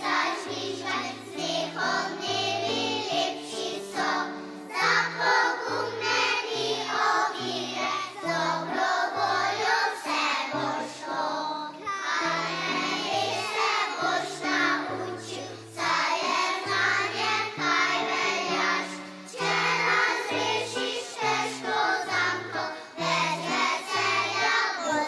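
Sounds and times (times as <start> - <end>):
children's choir singing: 0.0 - 25.0.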